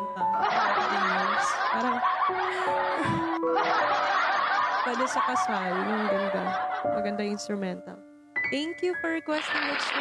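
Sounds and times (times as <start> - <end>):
piano instrumental music: 0.0 - 10.0
laughter: 0.3 - 7.0.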